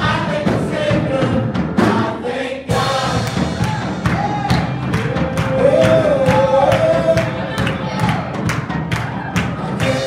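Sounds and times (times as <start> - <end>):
group of voices singing: 0.0 - 4.8, 5.4 - 7.9, 9.4 - 10.0.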